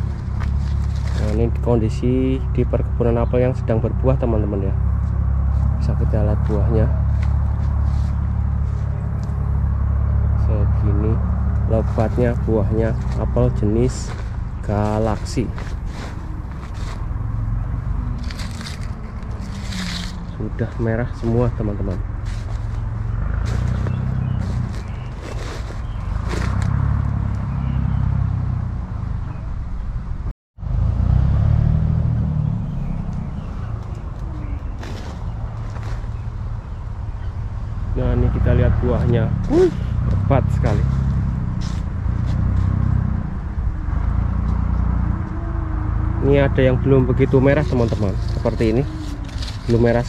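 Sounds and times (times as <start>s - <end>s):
leaves and twigs rustling: 0.0s - 2.6s, 4.1s - 28.3s, 32.8s - 37.8s, 38.8s - 43.2s, 46.8s - 50.0s
engine running drone: 0.0s - 50.0s
low rumble on microphone: 0.0s - 50.0s.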